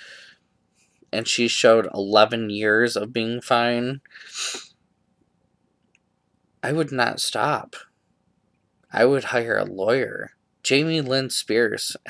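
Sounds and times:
man's sharp breath: 0.0 - 0.4, 4.1 - 4.7.

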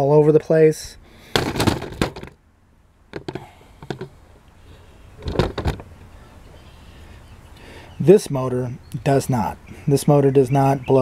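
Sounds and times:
faint steady hum: 0.0 - 11.0
metal knocks and clunks: 1.4 - 2.4, 3.1 - 4.1, 5.2 - 5.9.

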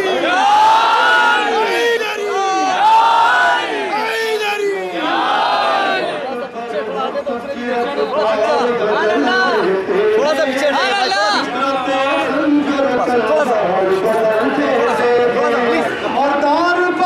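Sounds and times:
crowd of men chanting: 0.0 - 6.2.

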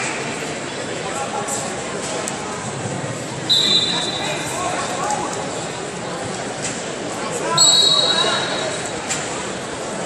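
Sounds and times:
crowd chatter: 0.0 - 10.0
referee's whistle blast: 3.5 - 4.4, 7.6 - 8.6.

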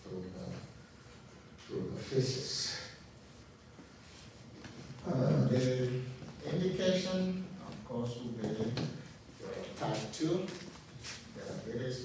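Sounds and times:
man lecturing: 0.0 - 0.8, 1.6 - 3.1, 5.0 - 12.0.

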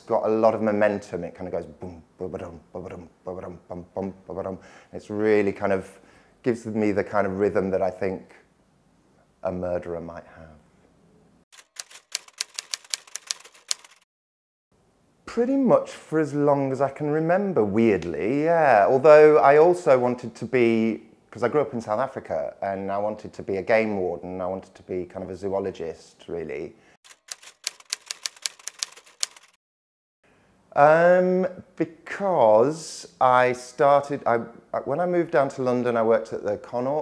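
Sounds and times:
typewriter keys clacking: 11.6 - 14.0, 27.1 - 29.6.

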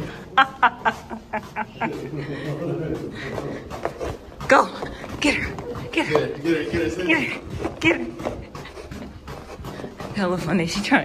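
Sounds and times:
rapid panting breaths: 1.0 - 11.0.

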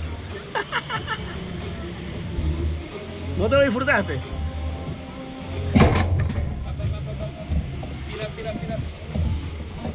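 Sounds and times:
low uneven rumble: 0.0 - 9.9.

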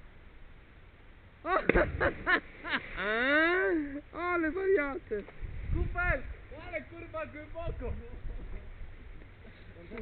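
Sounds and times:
person splashing into river: 1.6 - 3.1.

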